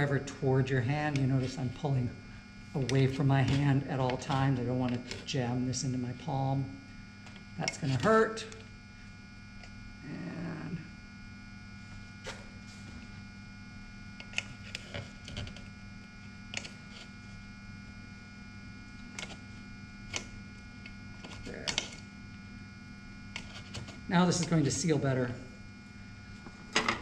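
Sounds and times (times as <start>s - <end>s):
electrical hum: 0.0s - 27.0s.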